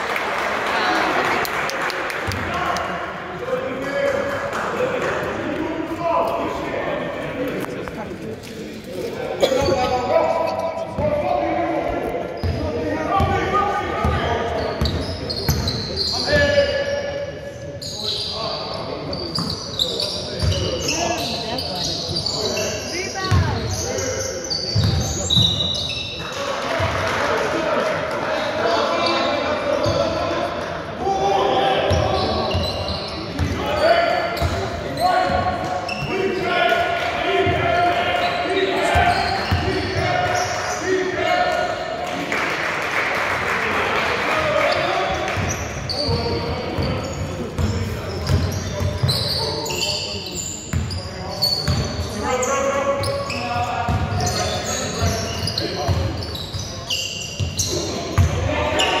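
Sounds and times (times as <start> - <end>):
basketball bouncing on wooden court: 23.3 - 23.7, 45.4 - 49.2.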